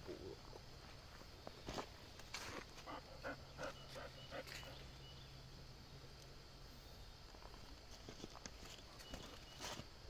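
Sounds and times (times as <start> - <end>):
quiet outdoor ambience: 0.0 - 10.0.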